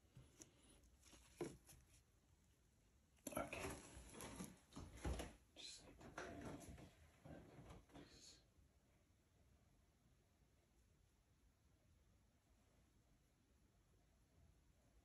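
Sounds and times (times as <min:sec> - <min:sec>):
soft handling sound: 0:00.0 - 0:02.4, 0:03.2 - 0:05.4
person whispering: 0:03.2 - 0:03.9, 0:05.5 - 0:06.2, 0:07.9 - 0:08.5.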